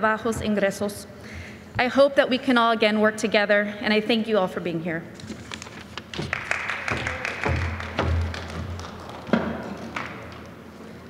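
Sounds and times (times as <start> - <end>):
papers being gathered: 5.2 - 7.6.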